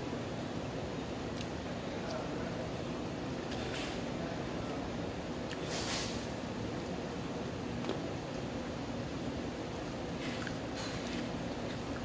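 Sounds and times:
room hum: 0:00.0 - 0:12.0
crunching while eating: 0:09.8 - 0:12.0
person chewing food: 0:09.8 - 0:12.0.

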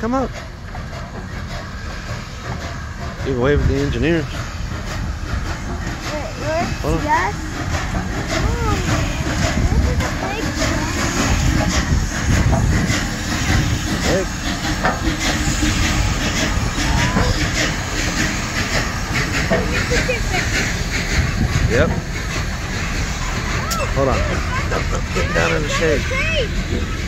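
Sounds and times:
hissing steam: 0:00.0 - 0:27.0
steam locomotive wheels rumbling: 0:00.0 - 0:27.0.

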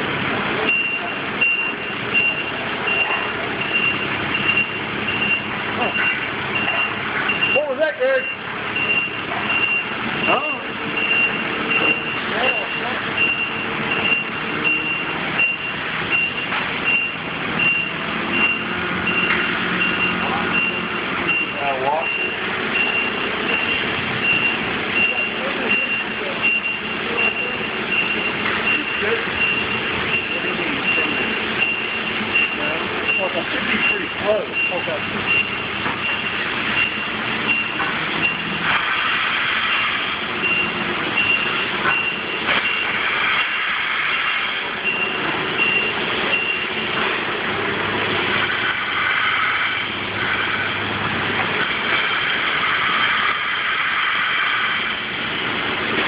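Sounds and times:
machinery noise: 0:00.0 - 0:56.0
warning beeper beeping: 0:00.6 - 0:38.6, 0:40.4 - 0:43.6, 0:44.8 - 0:47.0.

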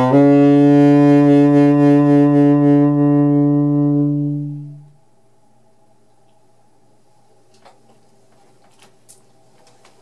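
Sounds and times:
saxophone holding long low note: 0:00.0 - 0:05.9.

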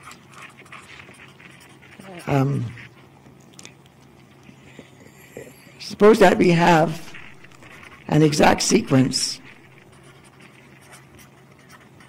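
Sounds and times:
felt-tip marker scratching on paper: 0:00.0 - 0:03.0, 0:05.9 - 0:12.0.

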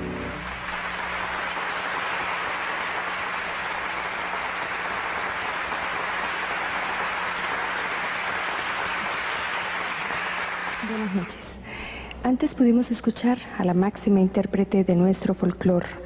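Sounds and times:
audience applauding: 0:00.0 - 0:11.4.

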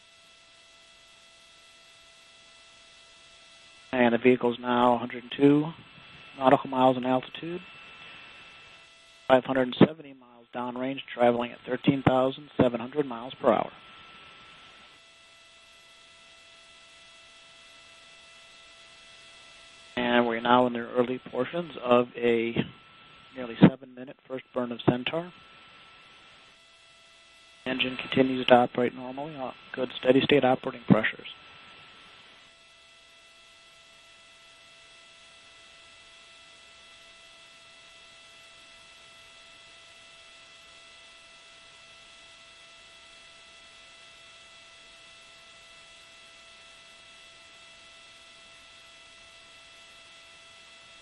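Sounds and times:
electronic hum and hiss: 0:00.0 - 0:51.0
faint broadcast hiss: 0:03.9 - 0:15.0, 0:20.0 - 0:26.6, 0:27.6 - 0:32.5.

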